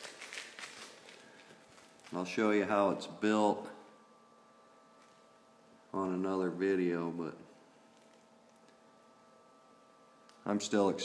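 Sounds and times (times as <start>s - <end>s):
small fan humming: 0.0s - 11.0s.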